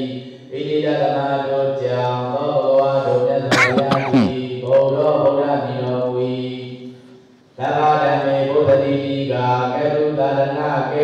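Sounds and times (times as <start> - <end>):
man chanting in monotone: 0.0 - 7.0, 7.6 - 11.0.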